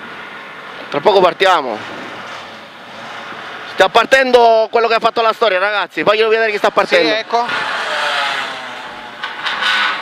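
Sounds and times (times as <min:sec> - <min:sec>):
rally car engine: 0:06.7 - 0:10.0.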